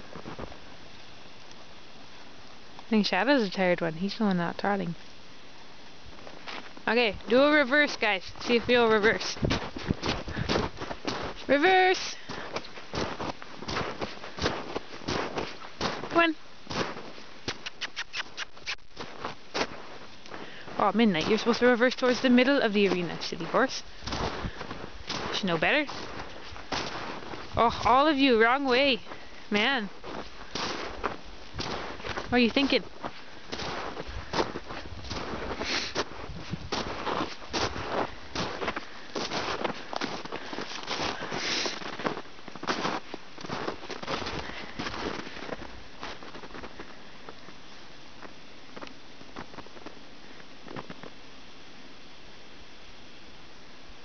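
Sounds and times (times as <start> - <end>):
footsteps crunching in snow: 0.0 - 0.7, 6.0 - 50.0.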